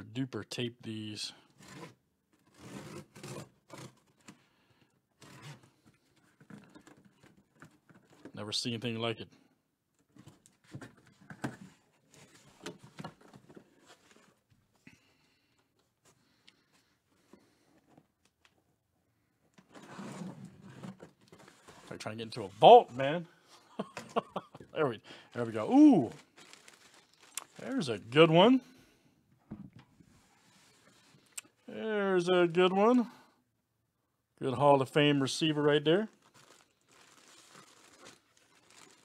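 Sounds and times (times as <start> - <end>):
cardboard scraping: 1.6 - 4.2, 19.7 - 23.2
packing tape tearing: 26.0 - 27.7, 36.1 - 39.0.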